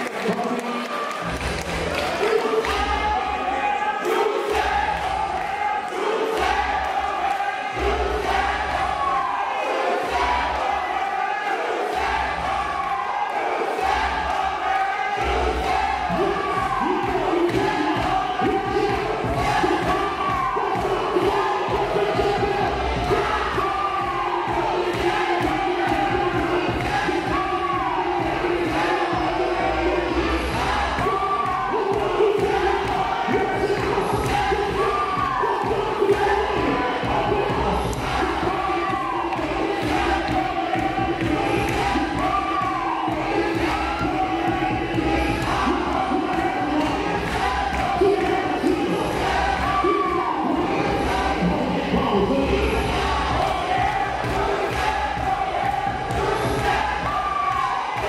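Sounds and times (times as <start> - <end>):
ballroom vogue beat: 0.0 - 58.0
crowd cheering and chanting: 0.0 - 58.0.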